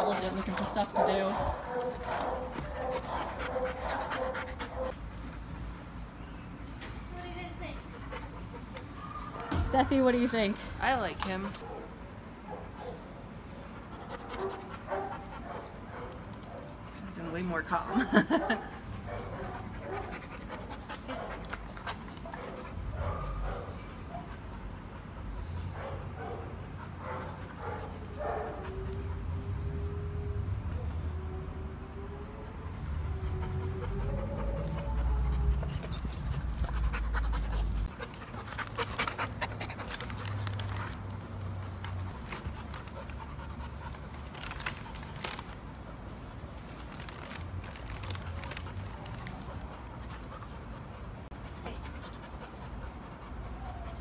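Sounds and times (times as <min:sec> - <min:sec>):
puppy panting: 0:00.0 - 0:06.0, 0:07.6 - 0:11.8, 0:13.6 - 0:29.6, 0:33.0 - 0:45.5, 0:47.8 - 0:54.0.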